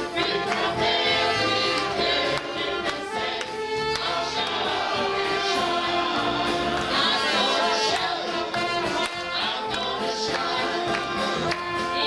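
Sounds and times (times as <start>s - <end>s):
group singing gospel song: 0.0s - 12.0s
rhythmic musical accompaniment: 0.0s - 12.0s.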